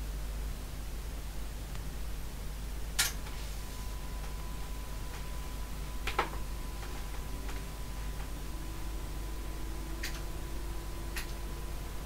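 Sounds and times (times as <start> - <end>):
computer fans humming: 0.0 - 12.0.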